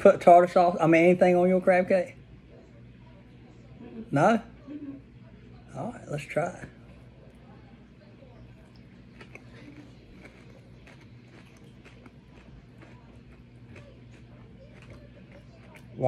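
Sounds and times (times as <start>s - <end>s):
low room hum: 0.0s - 16.0s
person chewing food: 8.4s - 16.0s.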